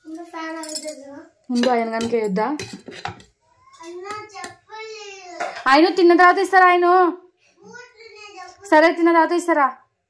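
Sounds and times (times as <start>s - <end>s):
child talking: 0.0s - 1.4s, 3.6s - 5.6s, 7.6s - 8.8s
dishes clinking: 0.6s - 4.6s, 5.4s - 5.9s.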